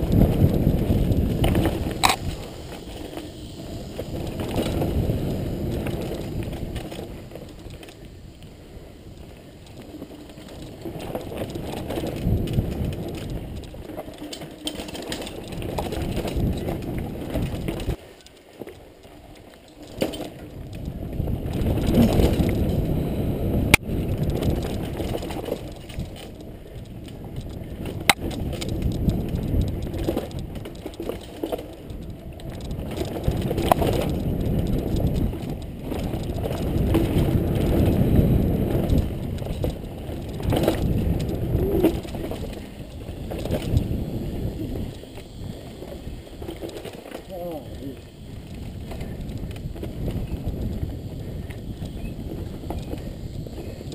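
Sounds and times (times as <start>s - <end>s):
bike rattling over ground: 0.0s - 53.9s
bike tyres rumbling on dirt trail: 0.0s - 53.9s
sharp clicks from bike: 0.0s - 53.9s.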